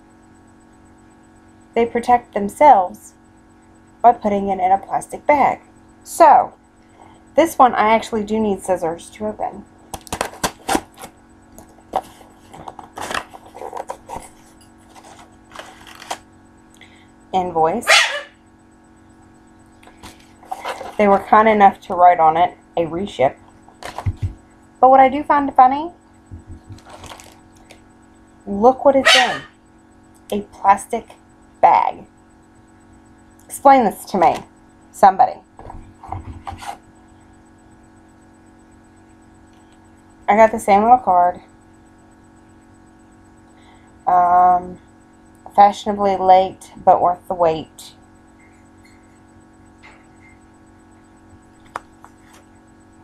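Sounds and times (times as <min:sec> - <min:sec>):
wrapping crinkling: 0:12.0 - 0:16.2, 0:26.8 - 0:27.7
plastic bag crinkling: 0:26.8 - 0:27.4.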